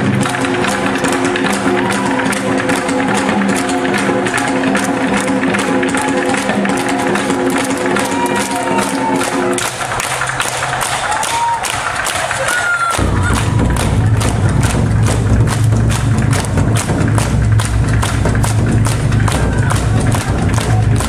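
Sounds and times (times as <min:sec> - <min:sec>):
barrel drums striking: 0:13.0 - 0:21.0.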